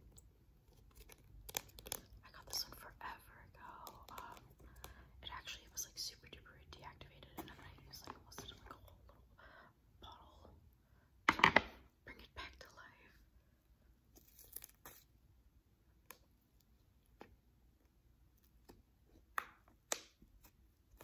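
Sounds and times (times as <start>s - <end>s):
person whispering: 2.2s - 4.6s, 5.2s - 9.4s, 10.0s - 10.6s, 12.0s - 13.3s.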